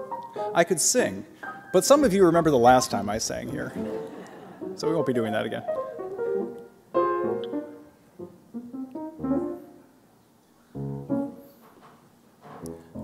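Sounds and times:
piano playing: 0:00.0 - 0:10.1, 0:10.7 - 0:11.7, 0:12.4 - 0:13.0.

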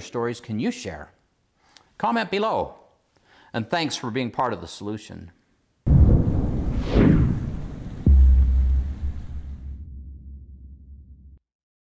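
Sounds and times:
whoosh sweeping down: 0:05.9 - 0:09.8
deep boom with low rumble: 0:05.9 - 0:11.4.

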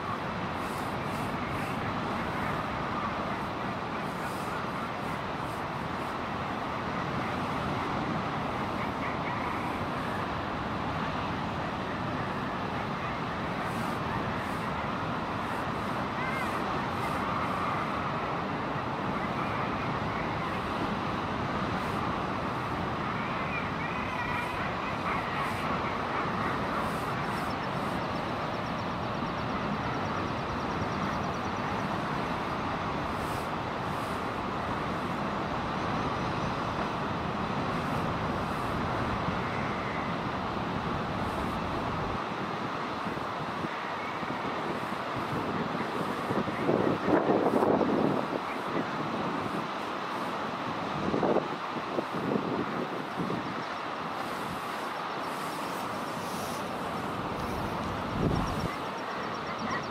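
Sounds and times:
steady rushing noise: 0:00.0 - 0:59.9.

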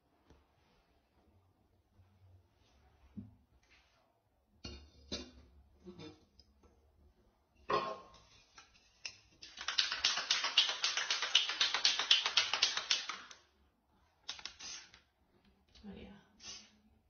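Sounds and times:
spray paint can hissing: 0:14.3 - 0:15.0.

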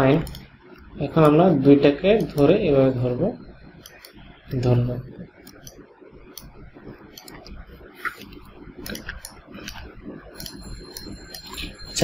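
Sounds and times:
computer mouse clicks: 0:00.2 - 0:01.4, 0:02.1 - 0:02.6, 0:03.8 - 0:04.6, 0:05.4 - 0:11.7.

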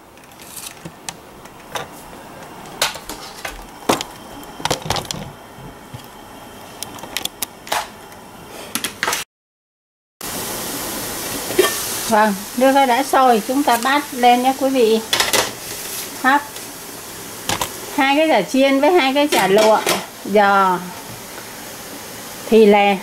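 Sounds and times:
boiling water hissing: 0:00.0 - 0:08.8, 0:10.2 - 0:23.0.

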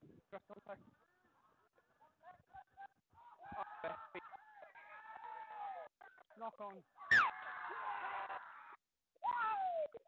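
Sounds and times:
people shouting: 0:03.2 - 0:05.9, 0:07.0 - 0:10.0.

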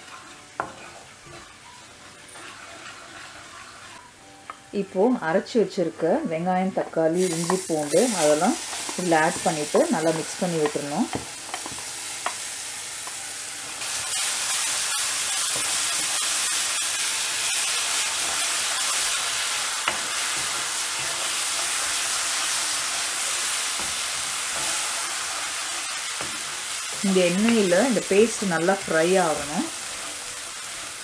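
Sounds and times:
paste sizzling in hot oil: 0:00.0 - 0:04.1, 0:07.1 - 0:31.0
wooden spatula stirring: 0:02.1 - 0:04.1.

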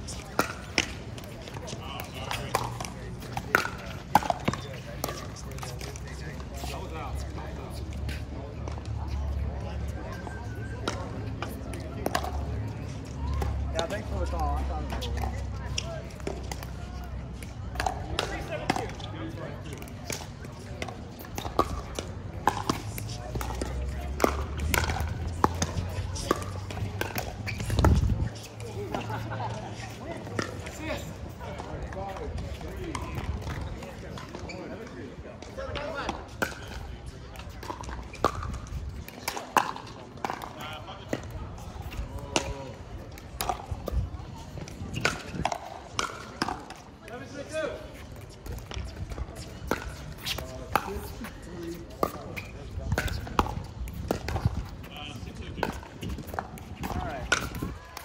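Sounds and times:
paddles hitting plastic ball: 0:17.4 - 0:28.6, 0:51.9 - 0:54.9, 0:55.6 - 0:58.0.

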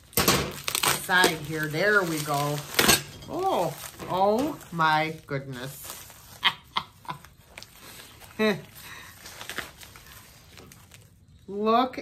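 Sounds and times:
woman laughing breathily: 0:06.3 - 0:07.4.

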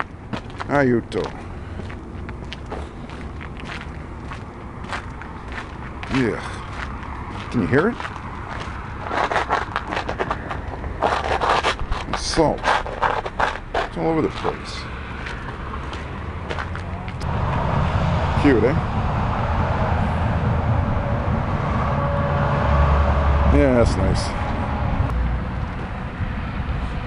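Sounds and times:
steady low rumble: 0:00.0 - 0:27.0
footsteps crunching on salt: 0:00.3 - 0:16.9.

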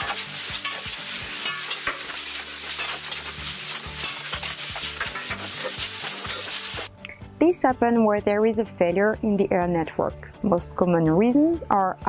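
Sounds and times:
hose slapping the floor: 0:00.0 - 0:06.9
compressed air hissing from hose: 0:00.1 - 0:06.9.

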